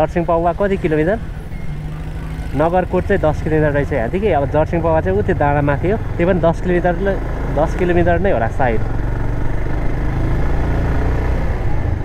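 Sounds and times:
man talking: 0.0 - 1.2, 2.5 - 8.9
motorcycle engine cruising: 0.0 - 12.0.

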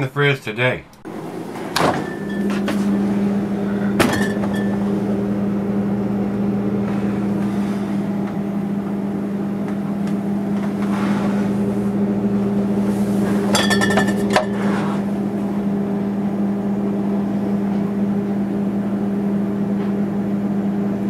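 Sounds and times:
refrigerator hum: 0.0 - 21.0.

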